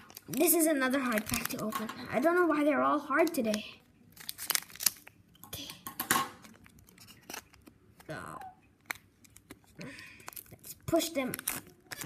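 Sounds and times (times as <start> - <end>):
foil wrapper crinkling and tearing: 0.0 - 2.4, 3.1 - 5.2, 6.4 - 12.0.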